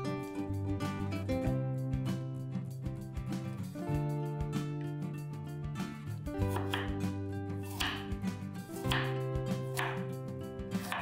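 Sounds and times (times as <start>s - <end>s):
background music: 0.0s - 11.0s
knife slicing carrot on board: 6.4s - 11.0s.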